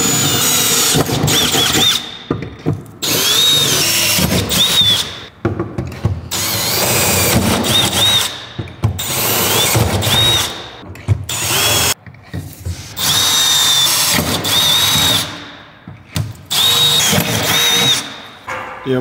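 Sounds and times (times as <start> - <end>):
cordless drill boring metal: 0.0 - 2.1, 3.0 - 5.3, 6.3 - 8.4, 9.0 - 10.6, 11.3 - 12.0, 13.0 - 15.4, 16.5 - 18.2.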